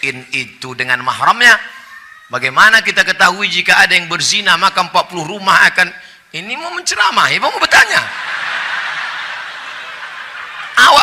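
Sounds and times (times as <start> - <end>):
large audience laughing: 8.0 - 11.0.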